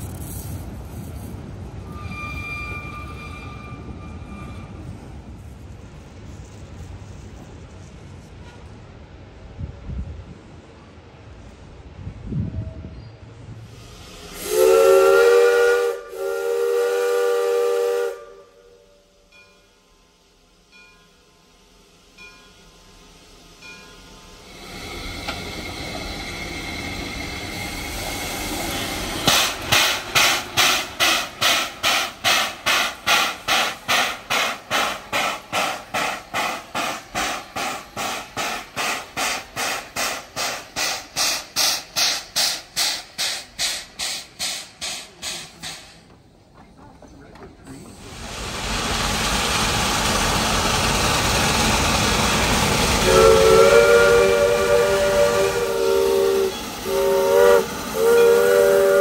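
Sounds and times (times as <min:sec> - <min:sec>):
steam whistle blasts: 0:01.8 - 0:05.0, 0:14.2 - 0:19.1, 0:53.0 - 0:59.0
steam hissing: 0:13.5 - 0:19.3, 0:20.0 - 0:46.2, 0:47.6 - 0:59.0
locomotive exhaust chuffs: 0:48.0 - 0:59.0.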